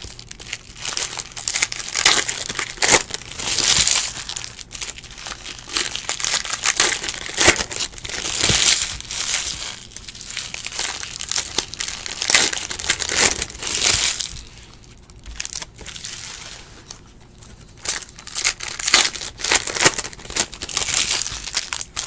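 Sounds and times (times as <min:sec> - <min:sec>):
foil wrappers crinkling: 0:00.0 - 0:22.0.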